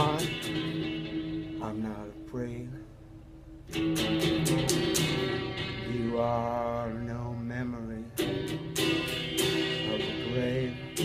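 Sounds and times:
man singing long wordless note: 0:00.0 - 0:00.4, 0:01.6 - 0:02.9, 0:05.1 - 0:08.6, 0:09.7 - 0:11.0.

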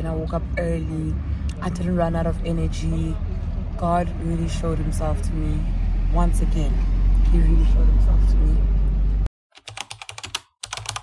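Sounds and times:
keyboard typing clicks: 0:09.6 - 0:11.0.

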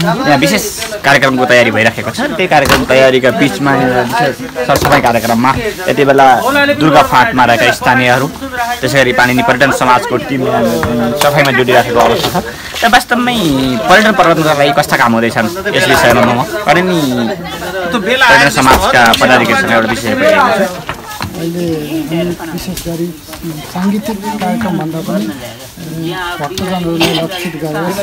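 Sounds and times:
man talking: 0:00.0 - 0:28.0.

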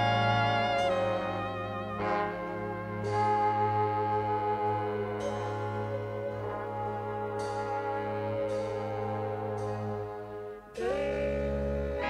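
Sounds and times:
big band backing: 0:00.0 - 0:12.0
trombone solo: 0:00.0 - 0:12.0.

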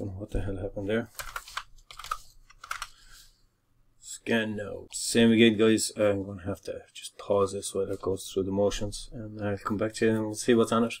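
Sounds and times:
computer keyboard typing: 0:01.2 - 0:02.9.

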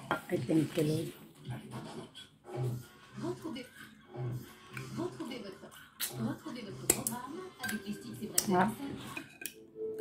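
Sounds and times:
cutlery clinking on plate: 0:07.6 - 0:09.6.

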